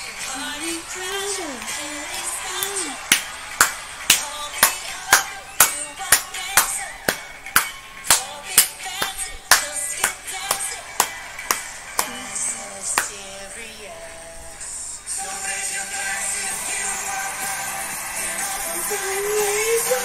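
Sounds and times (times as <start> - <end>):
song playing: 0.0 - 20.0
hands clapping: 1.1 - 12.3, 12.9 - 13.2.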